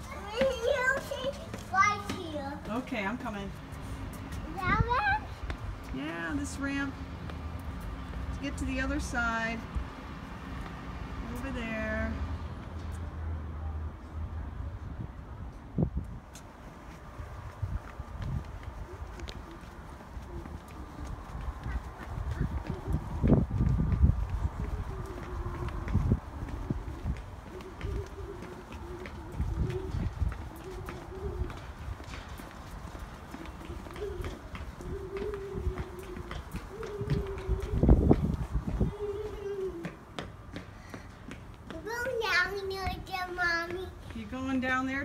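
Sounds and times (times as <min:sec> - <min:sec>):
footsteps on concrete: 0:00.0 - 0:13.5, 0:15.7 - 0:45.0
small child humming: 0:24.7 - 0:31.7, 0:33.3 - 0:40.0.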